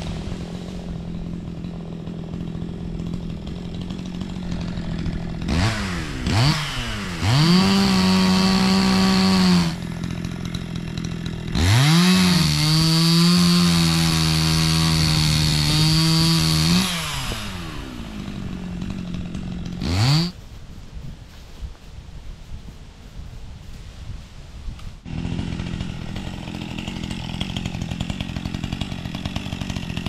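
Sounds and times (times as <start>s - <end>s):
chainsaw cutting wood: 0.0s - 20.4s, 25.0s - 30.0s.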